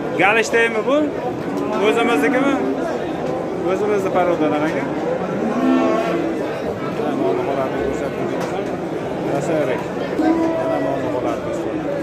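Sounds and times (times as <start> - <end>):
people talking: 0.0 - 12.0
cow mooing: 5.3 - 6.5.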